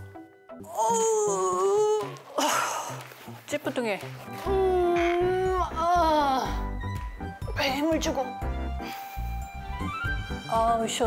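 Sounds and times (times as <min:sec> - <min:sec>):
woman groaning: 0:00.7 - 0:02.6.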